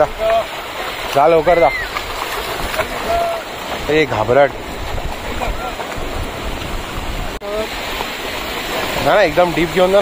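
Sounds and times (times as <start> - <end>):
seawater splashing around waders: 0.0 - 10.0.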